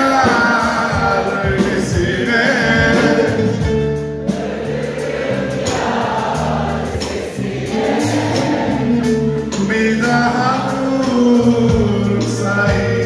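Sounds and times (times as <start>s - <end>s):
drums keeping steady beat: 0.0s - 13.0s
live band with singing: 0.0s - 13.0s.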